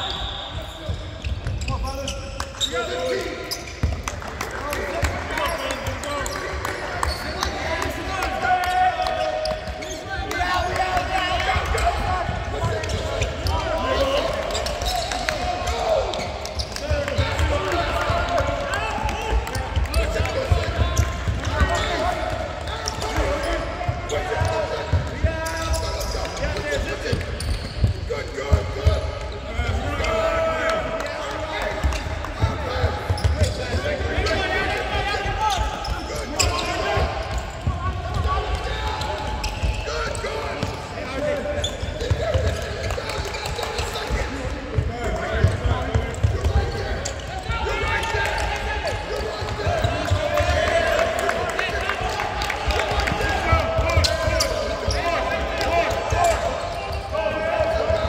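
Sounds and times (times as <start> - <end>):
players and coaches voices: 0.0 - 58.0.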